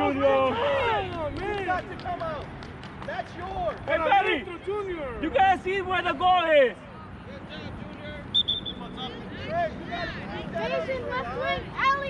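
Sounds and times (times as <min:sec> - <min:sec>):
high-pitched whistle trill: 0:08.3 - 0:08.8.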